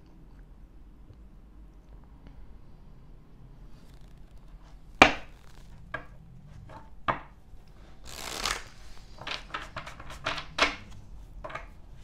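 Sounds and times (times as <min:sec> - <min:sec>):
quick card strokes: 0:08.0 - 0:10.0
cards riffle-shuffled: 0:08.0 - 0:11.0.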